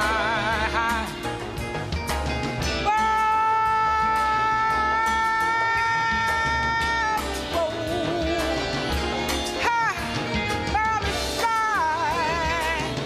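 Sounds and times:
woman singing: 0.0 - 1.3, 2.8 - 8.8, 9.5 - 13.0
saxophone: 0.0 - 1.8, 2.6 - 13.0
drums: 0.0 - 13.0
piano: 0.0 - 13.0
upright bass: 0.0 - 13.0.

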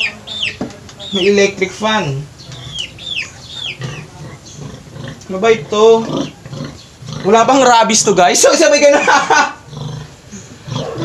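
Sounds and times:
bird peeping: 0.0 - 4.8, 6.0 - 7.1.

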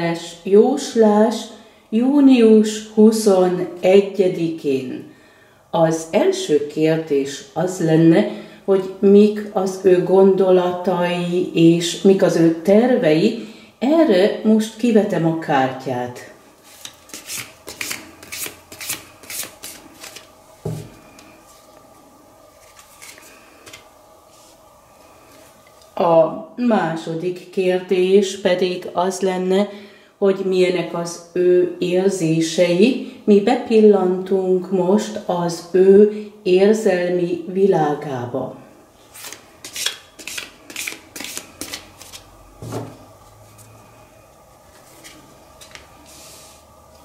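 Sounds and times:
cards shuffling swishes: 16.6 - 20.8, 22.6 - 23.8, 39.1 - 42.3.

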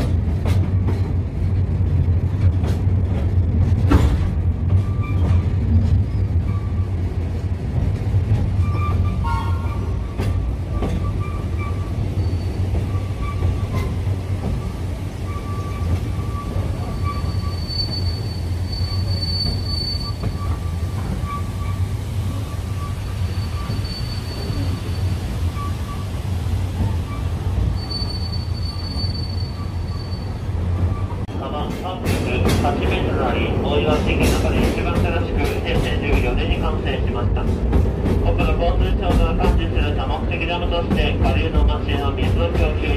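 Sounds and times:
train rumble inside carriage: 0.0 - 42.9
high wheel squeals: 10.7 - 14.0, 14.6 - 26.1, 27.0 - 31.2.

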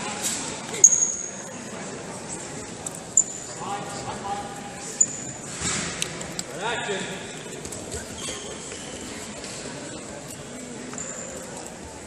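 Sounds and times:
echoing voices: 0.0 - 12.0
shoe squeak: 0.8 - 1.4, 5.0 - 5.5, 7.7 - 9.5, 10.2 - 11.8.

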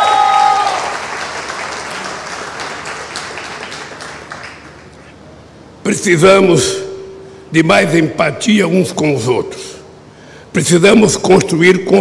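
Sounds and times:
long held shout: 0.0 - 1.0
audience applauding: 0.0 - 4.9.

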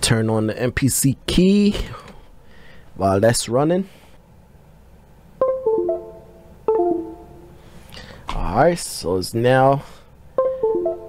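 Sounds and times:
plucked rolled keyboard chords: 5.4 - 7.6, 10.4 - 11.0.

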